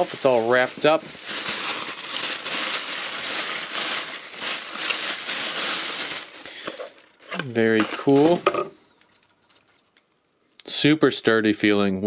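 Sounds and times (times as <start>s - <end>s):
plastic bag crinkling: 0.0s - 10.2s.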